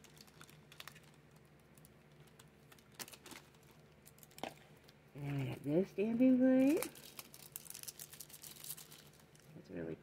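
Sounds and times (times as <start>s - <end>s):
plastic packaging crinkling: 0.0s - 5.0s, 6.4s - 9.6s.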